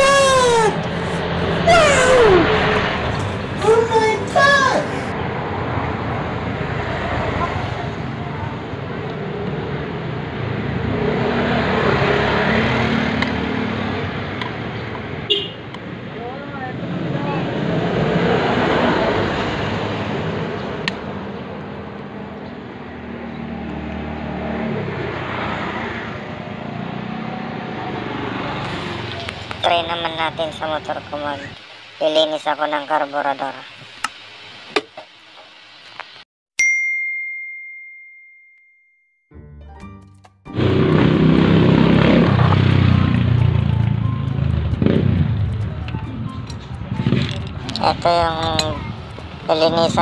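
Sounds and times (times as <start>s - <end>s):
road traffic passing: 0.0s - 32.6s, 40.5s - 50.0s.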